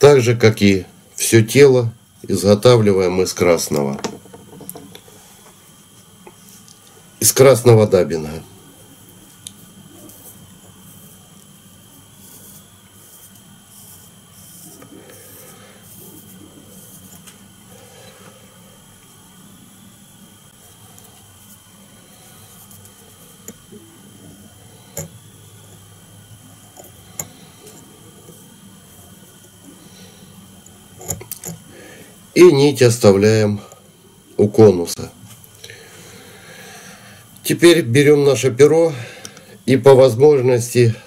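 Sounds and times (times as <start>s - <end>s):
low room tone hum: 0.0s - 41.0s.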